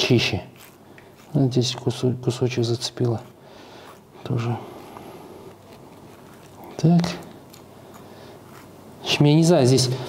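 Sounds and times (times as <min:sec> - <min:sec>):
spoon scraping melon flesh: 0:00.0 - 0:10.0.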